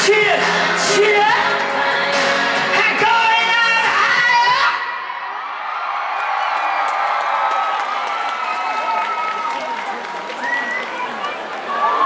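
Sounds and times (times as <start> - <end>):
crowd cheering and whooping: 4.3 - 12.0
faint clapping: 6.2 - 11.7.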